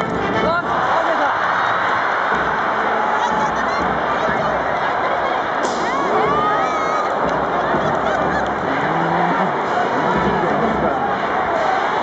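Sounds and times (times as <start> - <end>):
stadium crowd shouting and cheering: 0.0 - 12.0.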